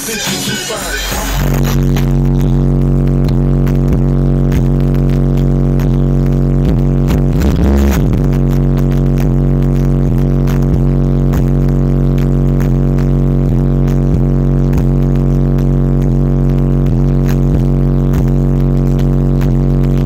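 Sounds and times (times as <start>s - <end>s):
loud subwoofer bass note: 1.3s - 20.0s.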